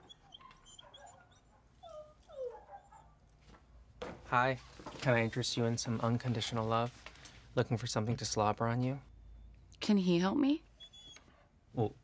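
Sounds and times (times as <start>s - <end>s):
dogs whimpering and whining: 0.0s - 3.1s, 10.8s - 11.5s.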